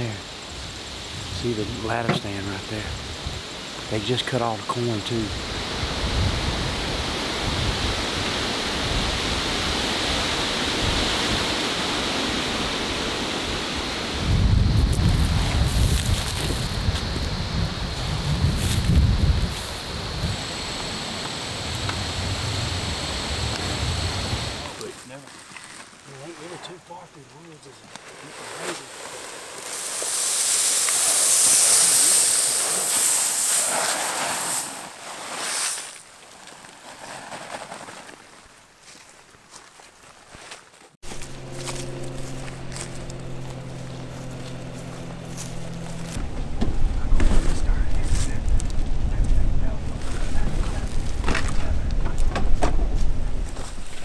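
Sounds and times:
faint high whine: 0.0s - 24.9s, 41.1s - 52.2s
broad rustling hiss: 0.0s - 46.2s
wind buffeting microphone: 5.3s - 24.8s, 41.5s - 54.0s.

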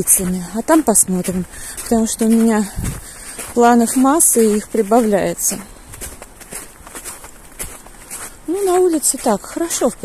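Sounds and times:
footsteps on packed snow: 0.0s - 10.0s.

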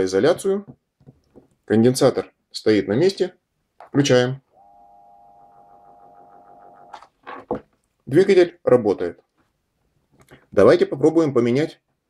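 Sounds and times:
electric motor humming: 4.6s - 7.0s.

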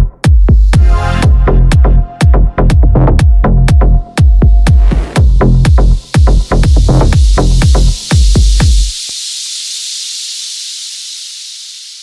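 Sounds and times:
electro house kick and bass: 0.0s - 12.0s
hissing white noise wash: 7.2s - 12.0s.

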